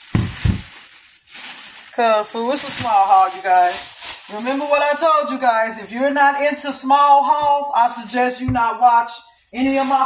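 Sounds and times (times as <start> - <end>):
plastic bag crinkling: 0.0 - 6.7, 9.0 - 10.0
short thumps: 8.4 - 8.7.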